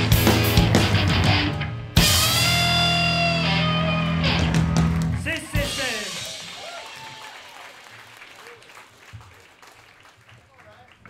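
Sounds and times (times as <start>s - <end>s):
punk band playing live: 0.0s - 7.0s.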